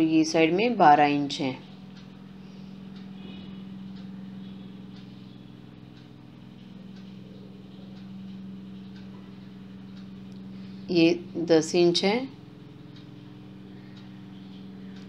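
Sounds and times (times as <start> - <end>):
appliance humming: 0.0 - 15.0.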